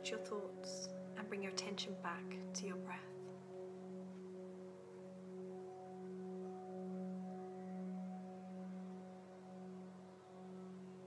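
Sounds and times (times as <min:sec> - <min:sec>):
meditation drone music: 0:00.0 - 0:11.0.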